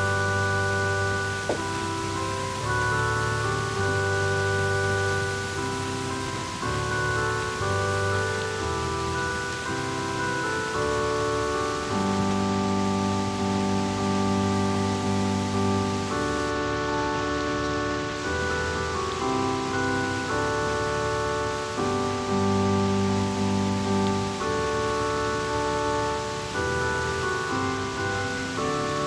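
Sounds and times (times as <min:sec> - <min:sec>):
keyboard chords: 0:00.0 - 0:29.0.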